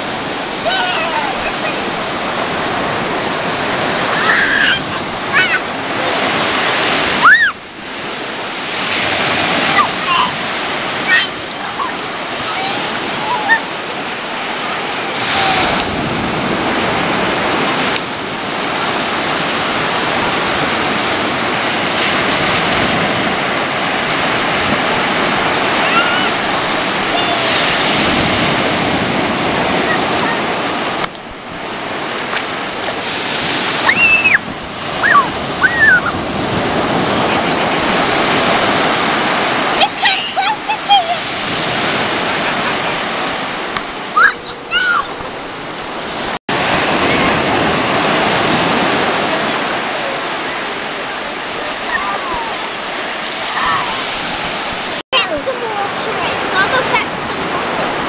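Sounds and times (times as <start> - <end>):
surf breaking on beach: 0.0 - 58.0
children shouting: 0.6 - 2.0, 4.0 - 6.2, 7.1 - 7.6, 9.6 - 10.4, 11.0 - 13.8, 25.7 - 27.7, 33.8 - 34.4, 35.0 - 36.2, 44.2 - 45.2, 51.8 - 52.6, 53.5 - 54.0.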